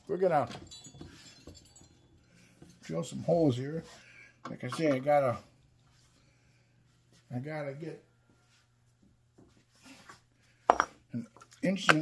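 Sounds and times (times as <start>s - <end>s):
faint rustles of hands: 8.3s - 10.6s.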